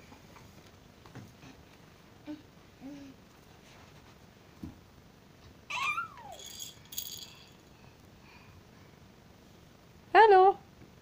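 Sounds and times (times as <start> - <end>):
baby squealing: 5.7 - 6.4
high rattling jingle: 6.2 - 7.8.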